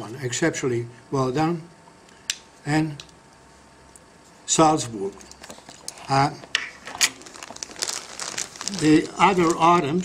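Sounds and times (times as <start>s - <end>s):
packaging crinkling: 5.2s - 10.0s.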